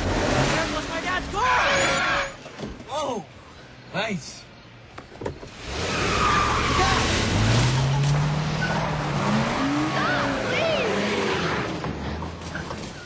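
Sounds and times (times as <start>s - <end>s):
tyre noise and squeals: 0.2s - 2.6s, 5.5s - 13.0s
car engine revving: 5.5s - 12.5s
voices shouting: 9.6s - 11.6s.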